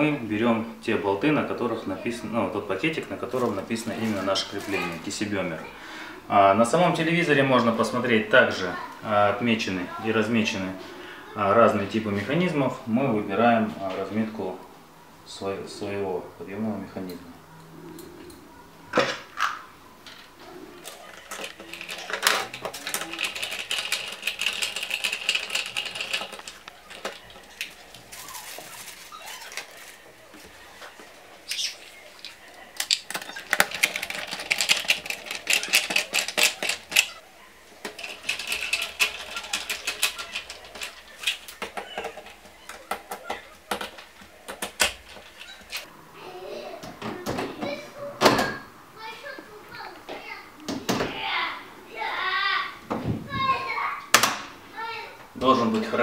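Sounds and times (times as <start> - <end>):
screwdriver clicking and scraping: 32.8 - 37.2, 37.8 - 45.9.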